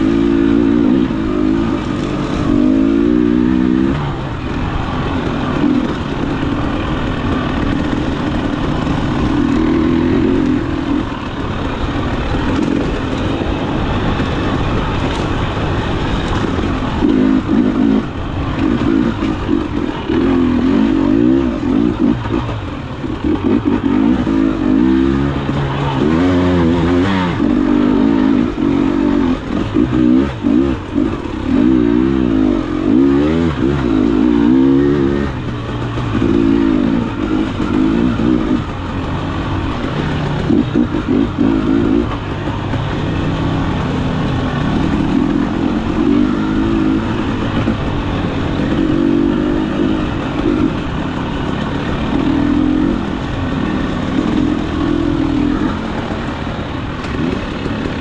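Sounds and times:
two-stroke motorcycle engine revving: 0:00.0 - 0:58.0.

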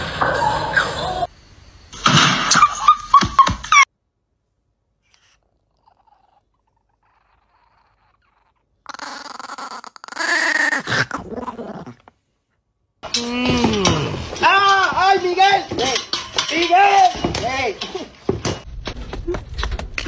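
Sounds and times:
dog growling: 0:05.4 - 0:12.2.

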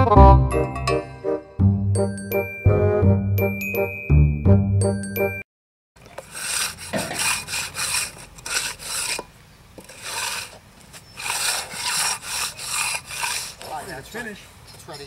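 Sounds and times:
steel tools scraping wet concrete: 0:06.0 - 0:14.3.

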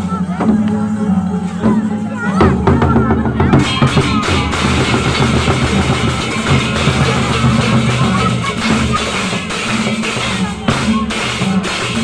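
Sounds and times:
hand cymbals clashing: 0:00.0 - 0:12.0
large drums beating: 0:00.0 - 0:12.0.

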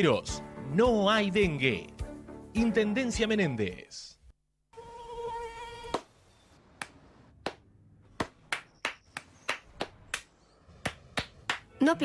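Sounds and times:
mosquito buzzing whine: 0:04.7 - 0:05.9
hand claps: 0:06.8 - 0:11.7.

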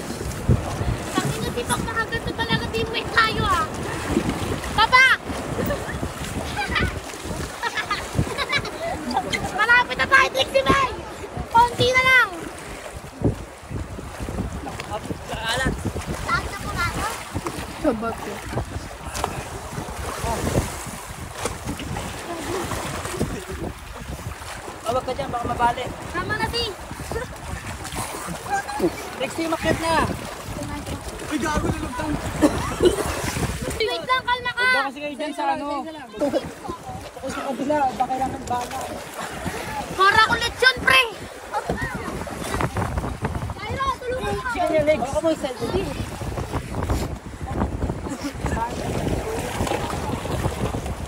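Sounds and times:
sea water splashing on hull: 0:00.0 - 0:51.0
wind buffeting microphone: 0:00.0 - 0:51.0.

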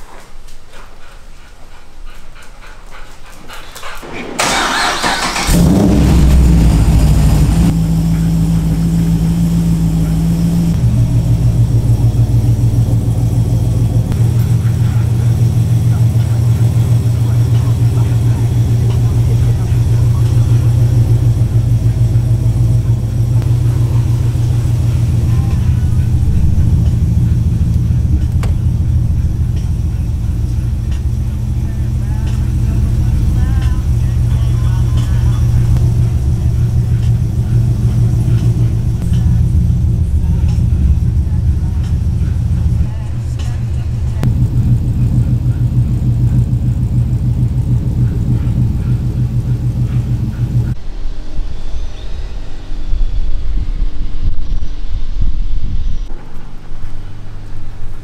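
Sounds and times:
car engine starting and idling: 0:03.5 - 0:50.8.

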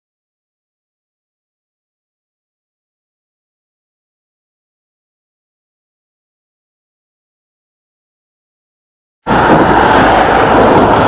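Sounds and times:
road noise: 0:09.2 - 0:11.0
wind buffeting microphone: 0:09.2 - 0:11.0.

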